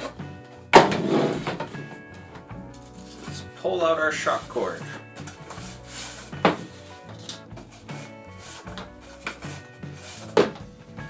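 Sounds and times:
background music: 0:00.0 - 0:11.0
handling knocks: 0:06.3 - 0:09.7, 0:10.3 - 0:10.8.

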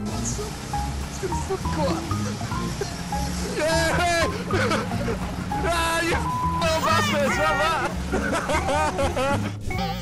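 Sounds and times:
background music: 0:00.0 - 0:10.0
people shouting and laughing: 0:03.4 - 0:10.0.

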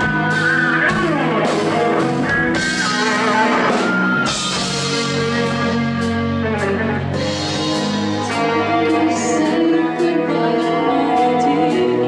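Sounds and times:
bass guitar: 0:00.0 - 0:12.0
distorted electric guitar: 0:00.0 - 0:12.0
drum kit with cymbal hits: 0:00.0 - 0:12.0.

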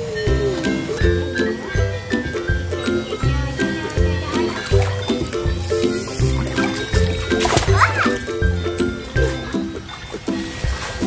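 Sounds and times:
instrumental children's tune: 0:00.0 - 0:11.0.

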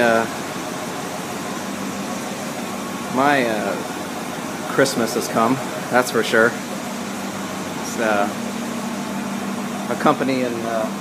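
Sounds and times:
mechanical hum and hiss: 0:00.0 - 0:11.0.

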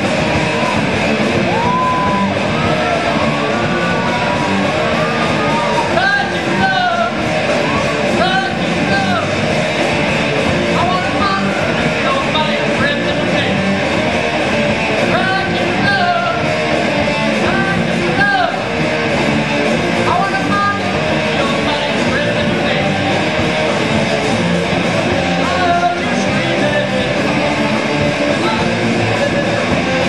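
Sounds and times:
drum kit: 0:00.0 - 0:30.0
electric guitars: 0:00.0 - 0:30.0.

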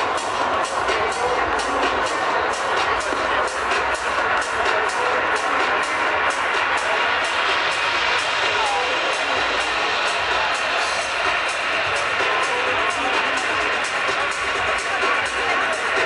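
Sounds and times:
techno music over sound system: 0:00.0 - 0:16.0.

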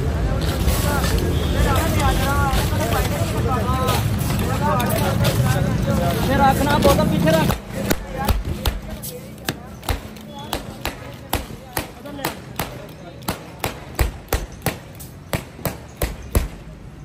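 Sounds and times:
low traffic rumble: 0:00.0 - 0:17.0
voices talking: 0:00.0 - 0:17.0.

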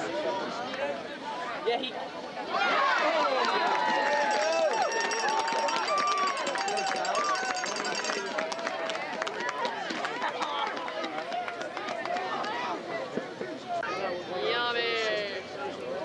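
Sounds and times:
crowd shouting and cheering: 0:02.3 - 0:16.0.

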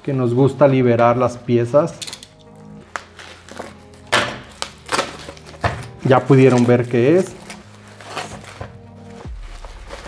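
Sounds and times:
bubble wrap crinkling: 0:02.8 - 0:10.0.

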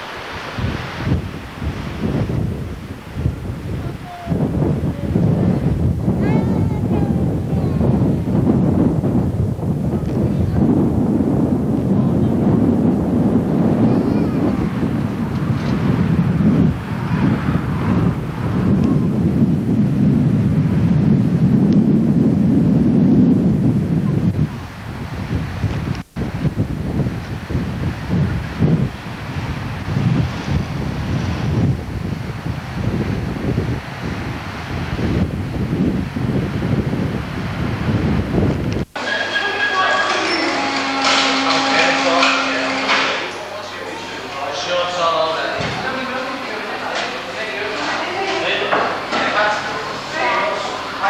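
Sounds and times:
wind buffeting microphone: 0:00.0 - 0:51.0.

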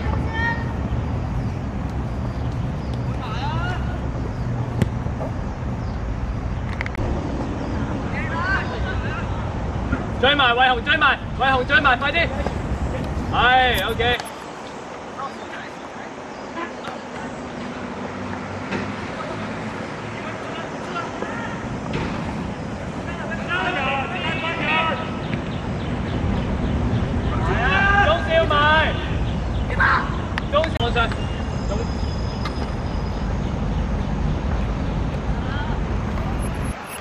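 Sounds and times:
steady low rumble: 0:00.0 - 0:14.4
outdoor background noise: 0:00.0 - 0:37.0
faint distant shouts: 0:20.2 - 0:21.8, 0:27.2 - 0:33.3.

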